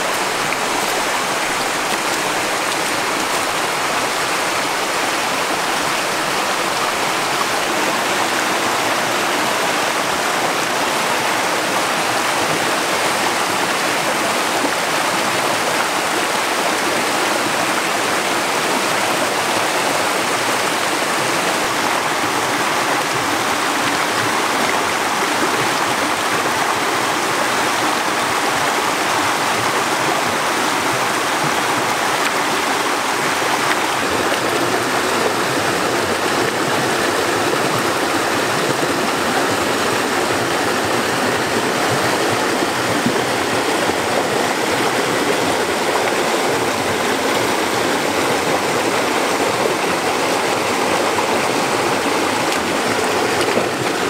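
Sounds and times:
stream rushing over rocks: 0:00.0 - 0:54.0.

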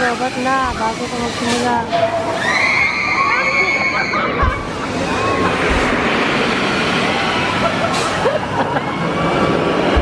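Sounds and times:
loud rushing noise: 0:02.2 - 0:10.0.

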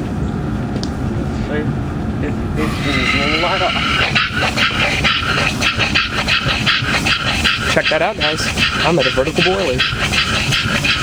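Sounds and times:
steam engine chuffing: 0:02.5 - 0:11.0
steam hissing: 0:02.6 - 0:11.0.

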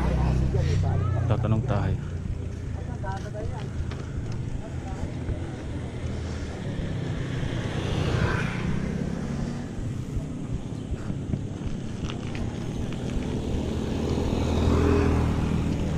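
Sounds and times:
motor scooter passing: 0:00.0 - 0:15.9
wind buffeting microphone: 0:02.3 - 0:15.9
bike rolling over concrete: 0:09.9 - 0:15.9.

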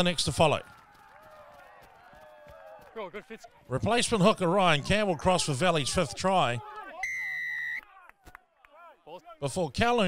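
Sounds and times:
referee's whistle blast: 0:07.0 - 0:07.9.

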